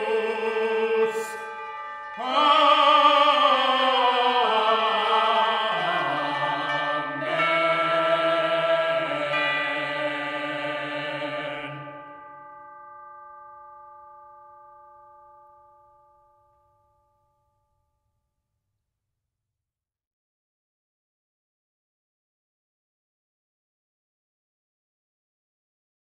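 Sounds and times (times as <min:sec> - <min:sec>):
ringing tone: 0:00.0 - 0:17.8.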